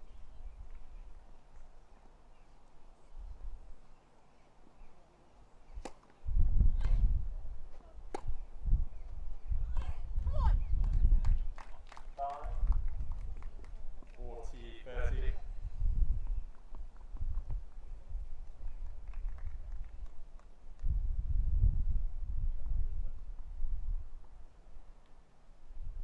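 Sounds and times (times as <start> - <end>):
racket hitting tennis ball: 5.8 - 6.1.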